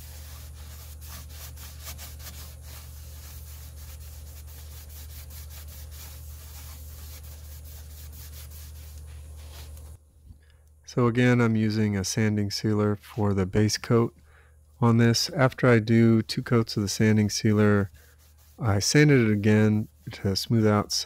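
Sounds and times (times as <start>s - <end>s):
paper towel rubbing wood: 0.0s - 10.0s, 16.6s - 20.9s.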